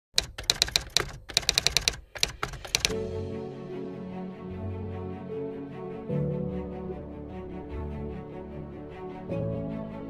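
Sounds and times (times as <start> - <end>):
typewriter key clicks: 0.1 - 3.0.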